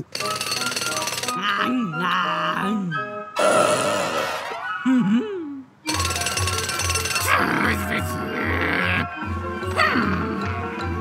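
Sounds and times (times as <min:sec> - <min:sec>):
background music with steady beat: 0:05.8 - 0:11.0.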